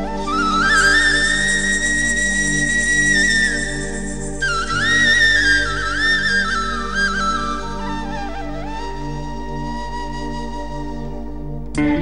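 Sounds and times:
flute holding long high note: 0.0 - 12.0
sustained backing chords: 0.0 - 12.0.

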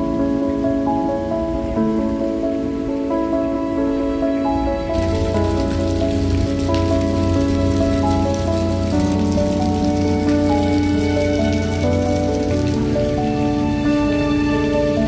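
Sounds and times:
background music with held notes: 0.0 - 15.0
fountain water splashing: 4.9 - 15.0.

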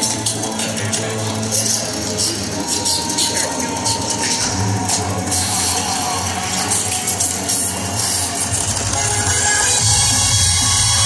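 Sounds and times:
electronic music through arena speakers: 0.0 - 11.0
sustained low synth tones: 0.0 - 11.0.

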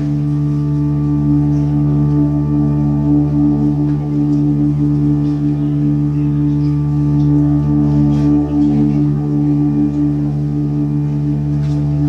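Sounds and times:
hurdy-gurdy drone: 0.0 - 12.0.

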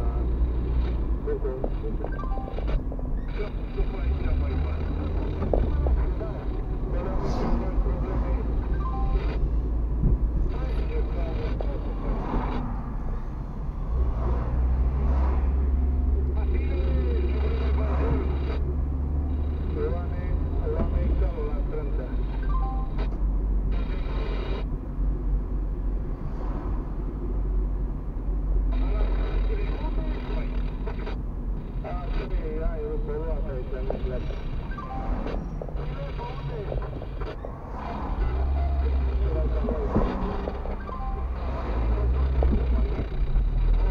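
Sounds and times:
engine and road rumble: 0.0 - 43.9.

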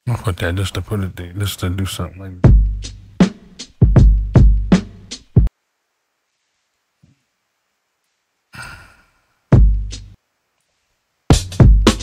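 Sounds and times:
electronic kick drum: 2.5 - 2.9, 3.8 - 4.9, 9.6 - 10.0, 11.3 - 12.0
soft breathy sound: 8.5 - 9.5.

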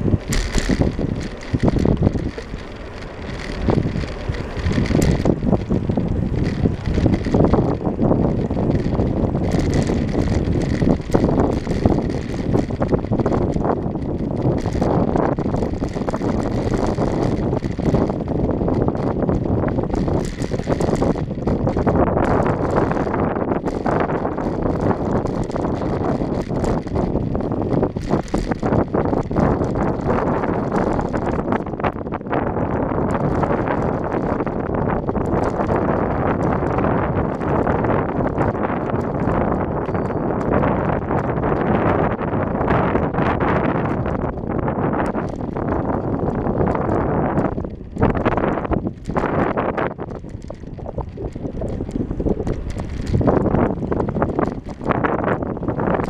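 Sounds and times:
bicycle knocks and rattles: 0.0 - 56.0
wind buffeting microphone: 0.0 - 56.0.

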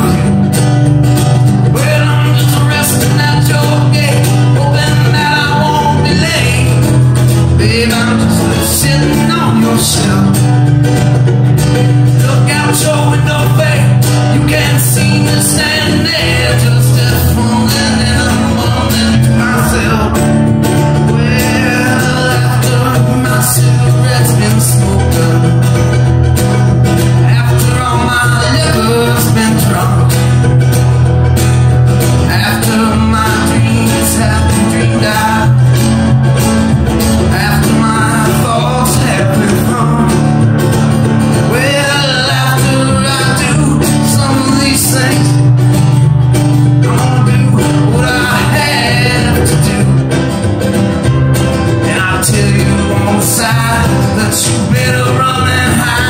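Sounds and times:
bluegrass string band playing: 0.0 - 56.0
plucked mandolin: 0.0 - 56.0
strummed acoustic guitar: 0.0 - 56.0
upright bass: 0.0 - 56.0.

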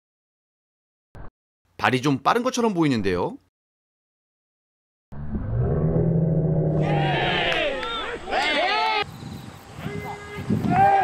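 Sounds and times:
voices calling out together: 6.8 - 9.0.

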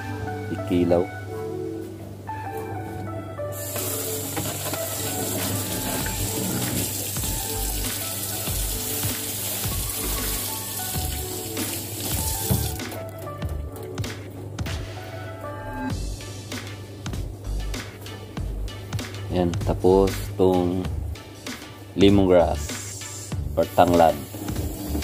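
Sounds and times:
background music: 0.0 - 25.0
tap water running into a sink: 3.6 - 12.9
hands rinsing under water: 3.6 - 13.0.

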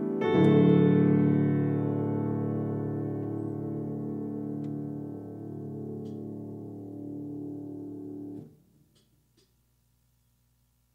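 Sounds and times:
piano chord ringing: 0.0 - 8.6.

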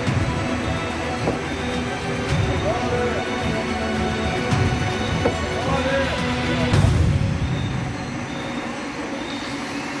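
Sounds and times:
faint steady tones: 0.0 - 10.0
machine humming and rumbling: 0.0 - 10.0.

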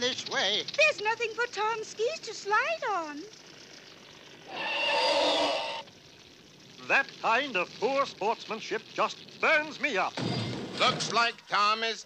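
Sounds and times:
cartoon hissing rush: 4.4 - 5.9.

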